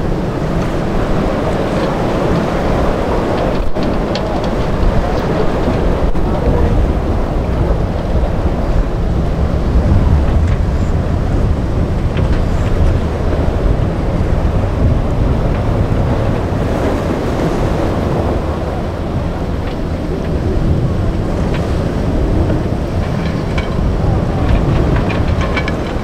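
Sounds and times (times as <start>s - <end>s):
waves and breaking surf: 0.0s - 26.0s
wind on microphone: 0.0s - 26.0s.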